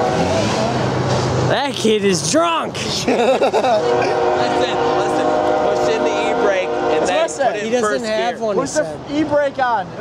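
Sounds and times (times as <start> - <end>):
people laughing: 2.7 - 5.2.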